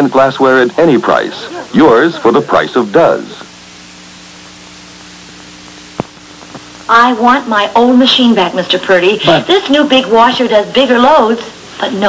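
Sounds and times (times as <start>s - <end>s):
faint low hum: 0.0s - 12.0s
tape hiss: 0.0s - 12.0s.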